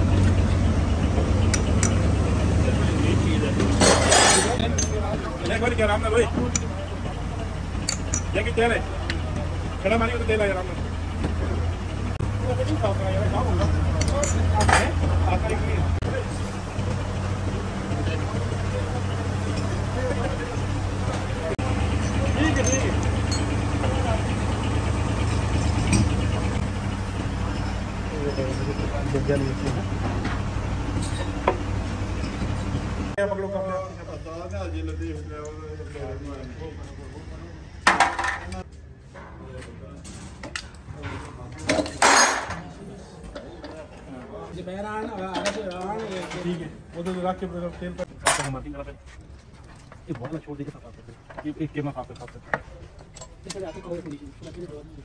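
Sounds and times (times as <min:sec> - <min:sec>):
engine idling: 0:00.0 - 0:38.7
men talking: 0:01.0 - 0:31.6, 0:33.1 - 0:40.1, 0:40.8 - 0:55.0
faint voices: 0:01.0 - 0:31.7
hand tools clattering on metal: 0:03.6 - 0:05.6, 0:07.8 - 0:09.2, 0:13.6 - 0:15.1, 0:21.9 - 0:23.8, 0:40.5 - 0:42.6.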